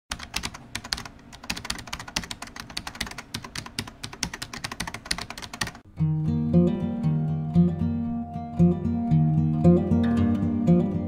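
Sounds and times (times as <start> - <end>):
keyboard typing clicks: 0.1 - 5.8.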